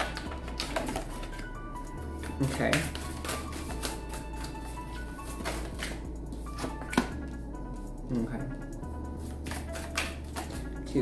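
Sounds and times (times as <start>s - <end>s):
cards being shuffled by hand: 0.0s - 1.5s, 2.2s - 7.2s, 9.2s - 10.7s
soft background music: 0.0s - 11.0s.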